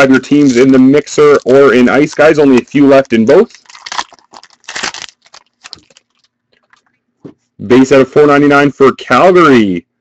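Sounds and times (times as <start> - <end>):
packaging crinkling and tearing: 0.2 - 6.9.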